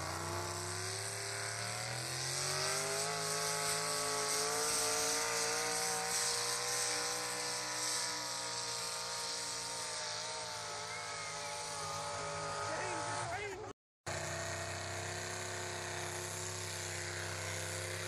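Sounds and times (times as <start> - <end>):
truck engine revving at full throttle: 0.0 - 18.0.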